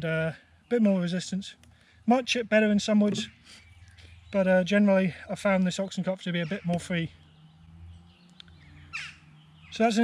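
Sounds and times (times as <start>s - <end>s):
faint bird chirps: 3.0s - 4.8s
small tick: 8.2s - 8.6s.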